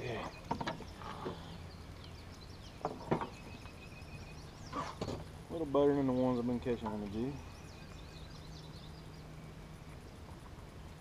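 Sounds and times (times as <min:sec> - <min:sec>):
faint bird chirps: 0:00.0 - 0:05.3, 0:07.2 - 0:10.4.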